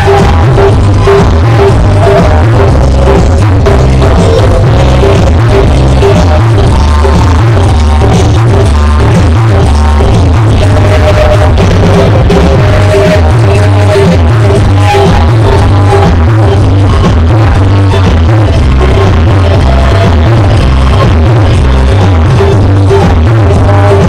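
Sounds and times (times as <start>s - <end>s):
electronic dance music: 0.0s - 24.0s.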